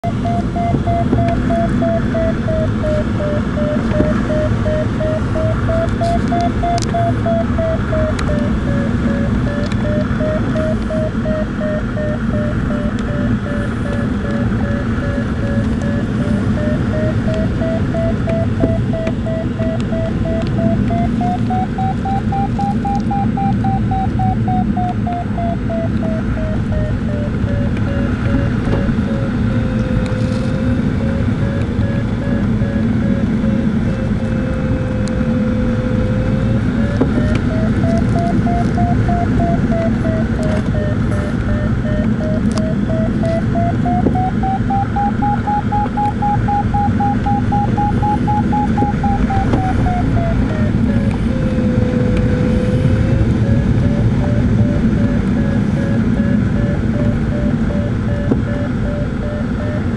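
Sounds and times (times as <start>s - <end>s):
airflow noise in cockpit: 0.0s - 59.9s
variometer tone sliding in pitch: 0.0s - 59.9s.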